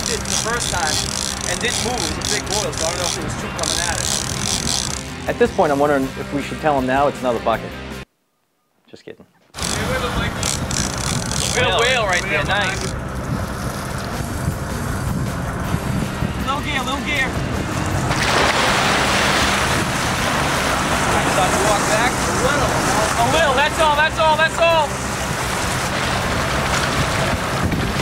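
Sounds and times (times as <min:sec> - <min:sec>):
boat engine running: 0:00.0 - 0:06.8, 0:09.5 - 0:28.0
wind: 0:00.0 - 0:07.1, 0:07.9 - 0:28.0
sea noise: 0:09.6 - 0:28.0
fish splashing: 0:17.8 - 0:23.3, 0:24.9 - 0:28.0.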